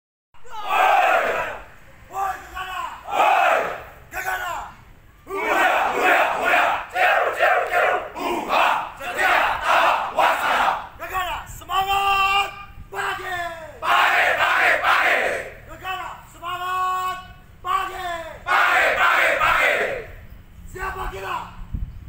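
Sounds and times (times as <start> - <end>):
men shouting a chant: 0.4 - 20.1.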